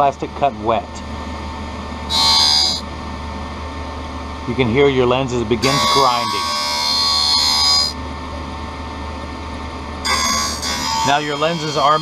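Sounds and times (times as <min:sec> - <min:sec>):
steady machine hum: 0:00.0 - 0:12.0
high-pitched lens grinding: 0:02.1 - 0:02.8, 0:05.6 - 0:08.0, 0:10.0 - 0:12.0.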